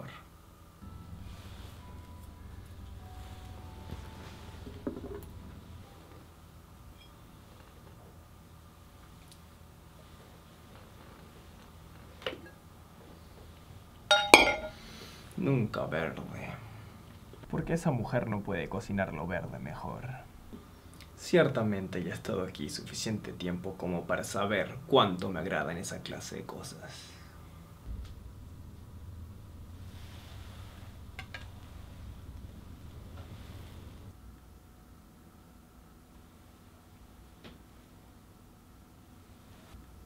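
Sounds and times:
low steady hum: 0:00.0 - 0:40.0
glass lid clinking: 0:14.1 - 0:14.8.

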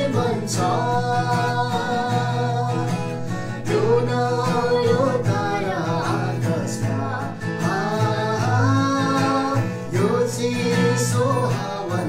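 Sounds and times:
acoustic guitar strumming: 0:00.0 - 0:12.0
man and woman singing carol: 0:00.0 - 0:12.0.

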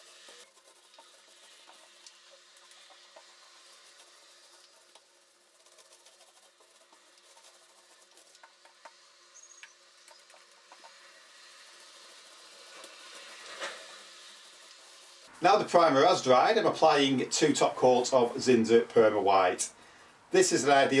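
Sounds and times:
paint roller sticky crackle: 0:00.0 - 0:19.1.

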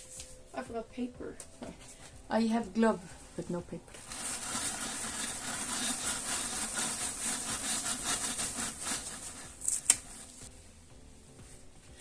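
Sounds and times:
rapid scrubbing strokes: 0:03.9 - 0:10.5.

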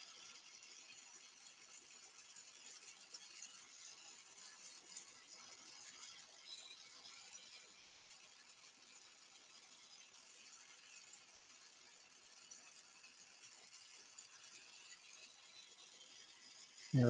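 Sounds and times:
faint steady hiss: 0:16.8 - 0:17.0.

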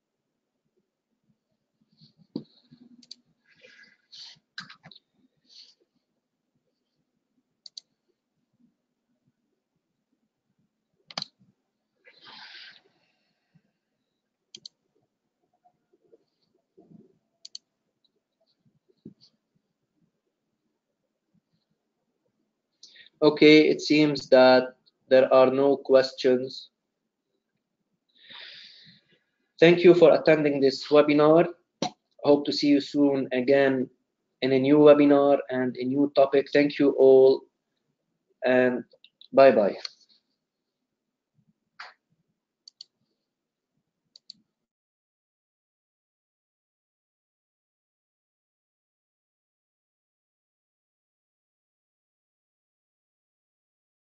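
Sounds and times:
faint computer mouse clicks: 0:42.6 - 0:42.9, 0:44.1 - 0:44.4.

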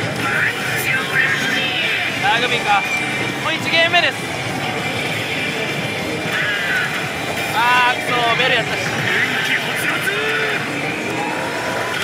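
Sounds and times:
slot machine battle sounds: 0:00.0 - 0:12.0
slot machine music and sound effects: 0:00.0 - 0:12.0.

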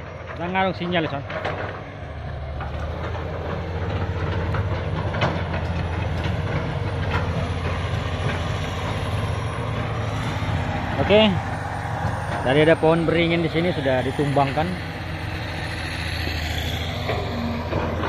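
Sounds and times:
excavator diesel engine rumbling: 0:00.0 - 0:18.0.

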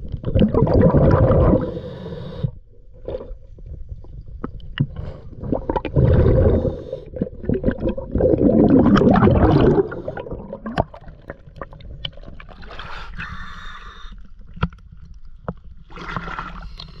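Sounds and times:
water bubbling and churning: 0:00.0 - 0:02.1, 0:02.9 - 0:13.4, 0:15.6 - 0:17.0.

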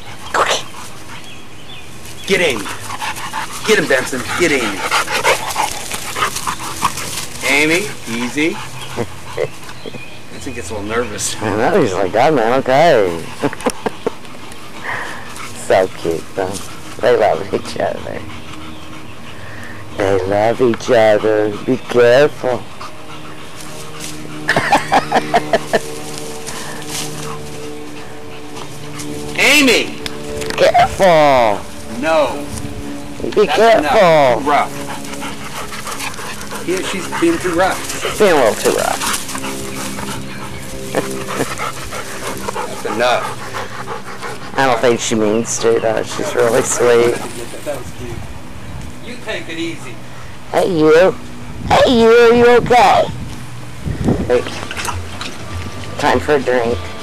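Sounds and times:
dogs moving and breathing: 0:00.0 - 0:51.4, 0:53.1 - 0:57.0
steady low hum: 0:00.0 - 0:57.0.

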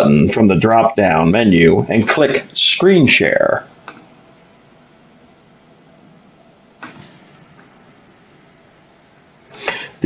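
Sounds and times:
man speaking: 0:00.0 - 0:03.7
faint steady hiss: 0:00.0 - 0:10.0
man breathing in: 0:09.5 - 0:10.0.

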